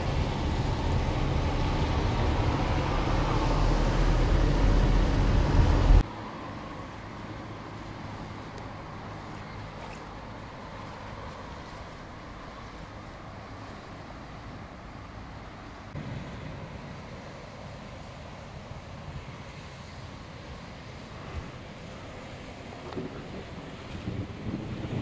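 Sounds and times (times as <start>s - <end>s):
car engine and road noise: 0.0s - 25.0s.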